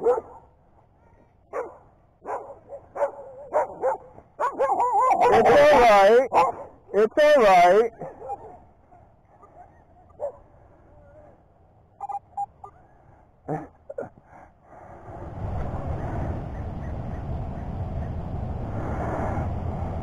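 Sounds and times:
small dog whimpering and yipping: 4.6s - 5.4s
steady low noise: 14.6s - 20.0s.

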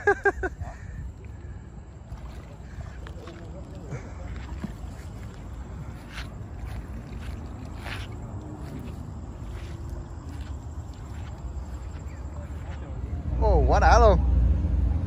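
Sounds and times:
water splashes: 0.0s - 13.2s
water lapping on rocks: 0.6s - 13.0s.

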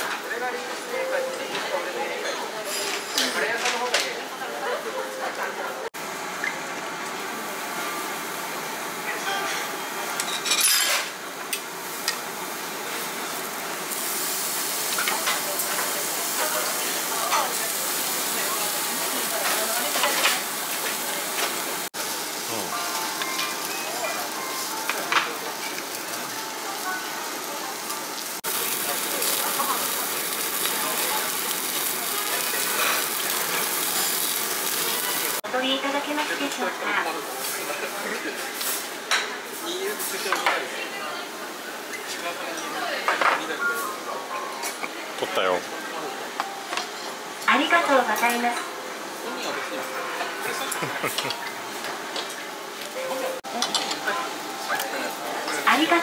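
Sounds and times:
busy dining room noise: 0.0s - 56.0s
faint voices of diners: 0.0s - 56.0s.

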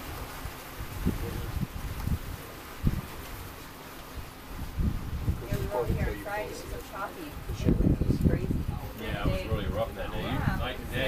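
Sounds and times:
hiss of wind and water: 0.0s - 11.0s
wind buffeting the microphone: 0.0s - 11.0s.

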